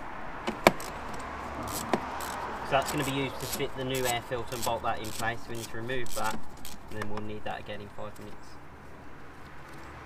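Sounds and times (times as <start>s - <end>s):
ratchet metallic clicks: 0.6s - 7.4s.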